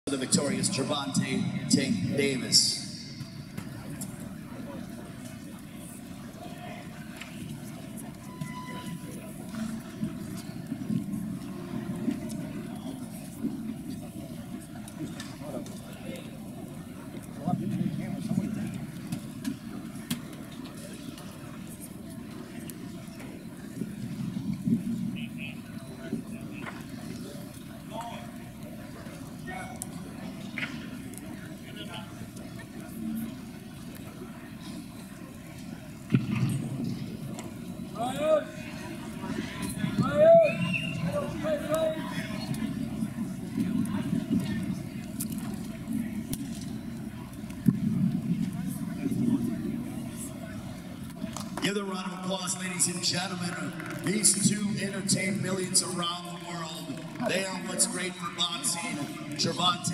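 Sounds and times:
echoing crowd hubbub: 0:00.0 - 0:59.9.

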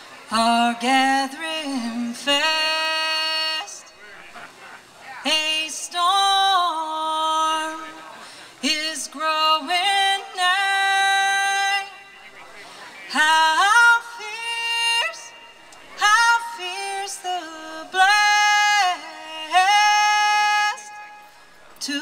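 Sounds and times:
woman singing unaccompanied: 0:00.3 - 0:03.8, 0:05.2 - 0:08.0, 0:08.6 - 0:12.1, 0:13.1 - 0:21.2, 0:21.8 - 0:22.0.

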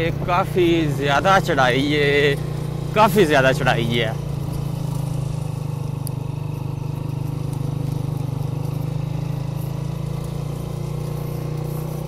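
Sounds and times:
motorcycle engine climbing uphill: 0:00.0 - 0:12.0.

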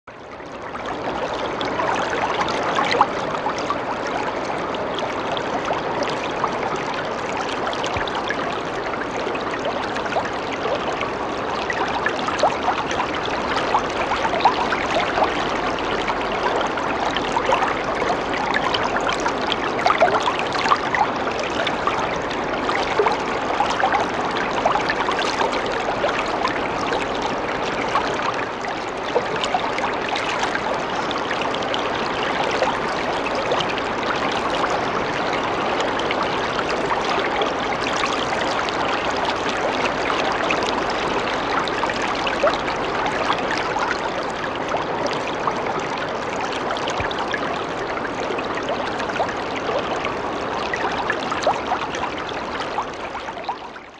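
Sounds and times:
water trickling: 0:00.1 - 0:53.9.

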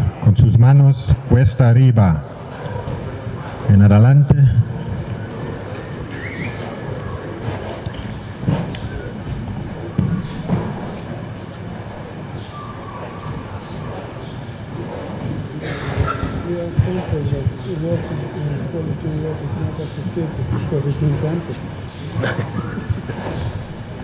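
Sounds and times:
murmur of spectators' voices: 0:00.0 - 0:24.0
soft thuds: 0:09.3 - 0:11.1.

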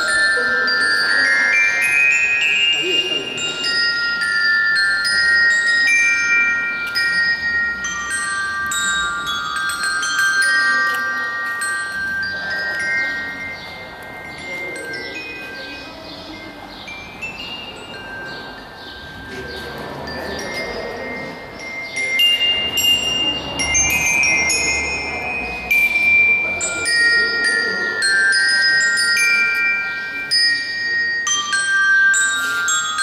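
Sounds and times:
glockenspiel melody: 0:00.0 - 0:33.0.

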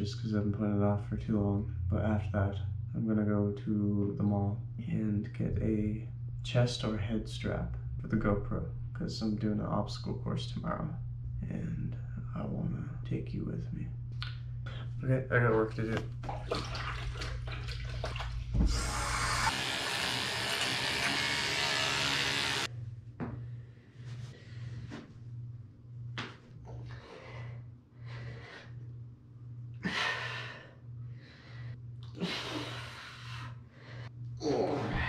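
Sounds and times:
kitchen tap running: 0:16.2 - 0:22.7
rhythmic hard breathing: 0:26.7 - 0:29.0, 0:29.8 - 0:34.2.

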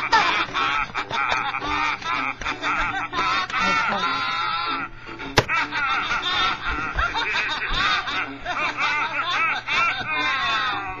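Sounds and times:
girls laughing: 0:00.0 - 0:11.0.

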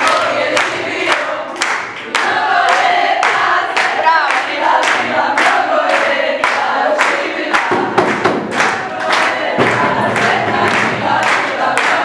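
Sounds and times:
applause: 0:00.0 - 0:12.0.

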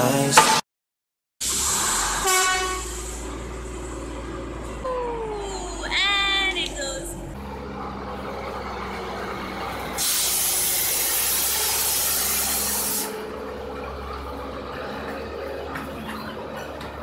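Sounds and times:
diesel locomotive humming: 0:01.4 - 0:17.0
loud hiss of released air: 0:10.0 - 0:13.1.

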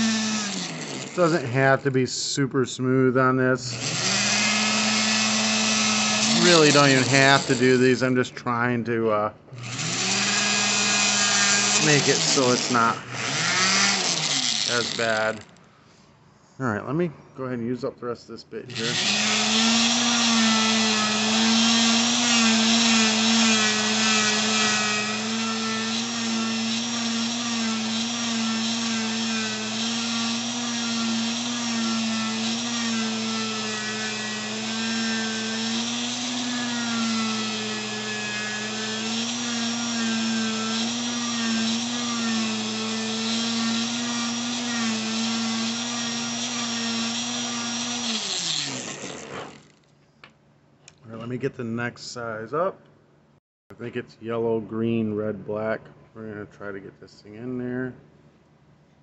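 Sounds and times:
rotary grinder grinding metal: 0:00.0 - 0:01.7, 0:03.7 - 0:08.0, 0:09.6 - 0:15.6, 0:18.7 - 0:49.9.

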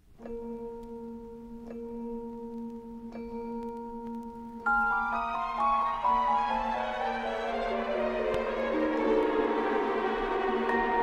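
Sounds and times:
vinyl record clicks: 0:00.1 - 0:01.0, 0:01.7 - 0:07.0, 0:07.7 - 0:11.0.

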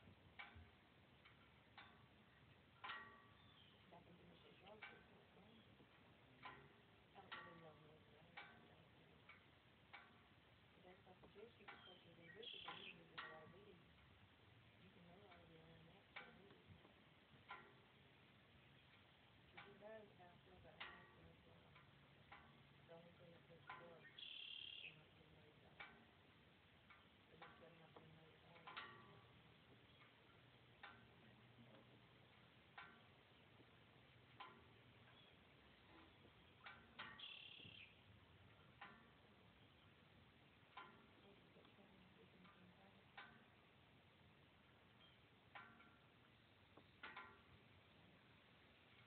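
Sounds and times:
faint clicks or chirps: 0:11.3 - 0:13.4, 0:23.6 - 0:25.1, 0:28.6 - 0:43.8
faint sharp pitched blips: 0:22.8 - 0:25.5, 0:34.4 - 0:43.6.

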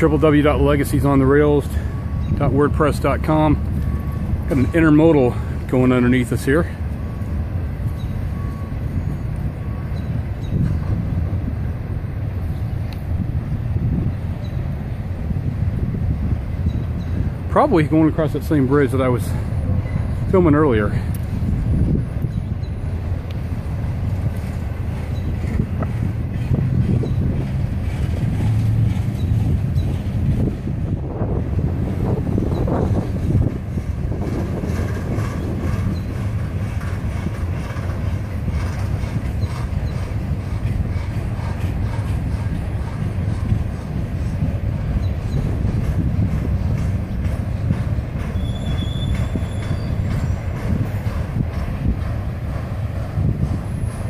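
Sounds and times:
train wheels rumbling on rail: 0:00.0 - 0:54.0
high squeal: 0:48.3 - 0:50.4.

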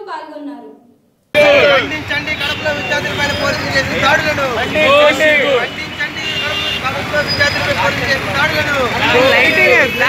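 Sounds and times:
crowd shouting: 0:01.4 - 0:10.0
road traffic noise: 0:01.4 - 0:10.0.

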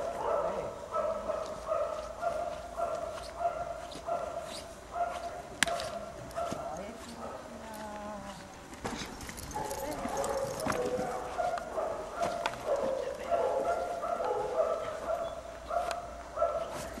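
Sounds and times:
dog barking: 0:00.0 - 0:07.6, 0:09.4 - 0:17.0.

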